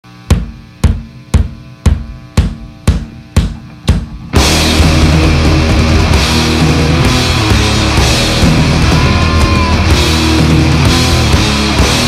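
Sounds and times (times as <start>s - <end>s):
drum kit hits: 0.2s - 12.0s.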